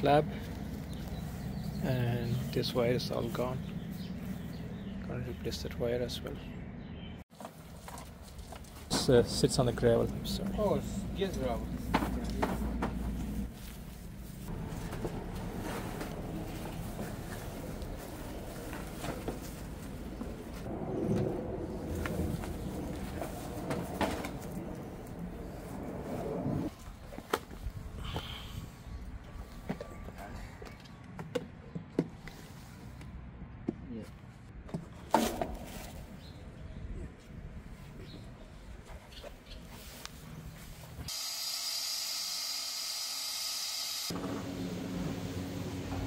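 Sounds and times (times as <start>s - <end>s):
gravel crunching: 7.3s - 27.7s.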